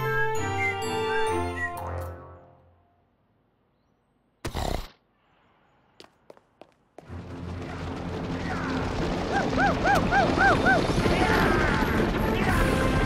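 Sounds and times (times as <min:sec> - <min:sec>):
bright cartoon music with chimes: 0:00.0 - 0:02.6.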